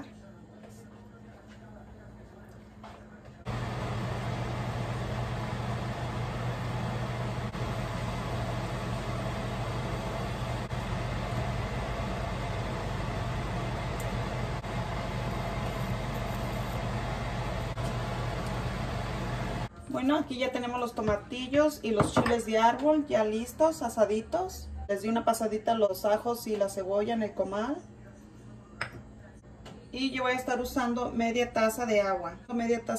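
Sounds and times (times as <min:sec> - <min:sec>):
steady whirring with low hum: 0:00.0 - 0:21.8.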